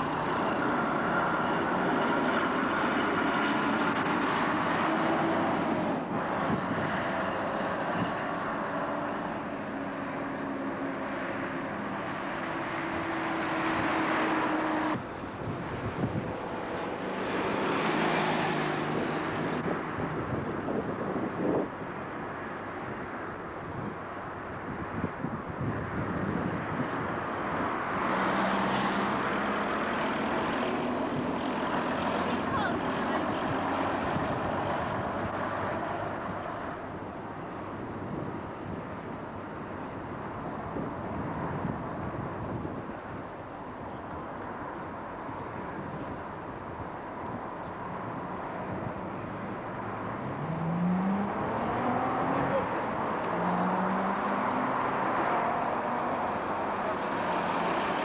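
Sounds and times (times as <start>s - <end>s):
diesel buses passing by: 0.0s - 58.0s
rush of traffic: 0.0s - 58.0s.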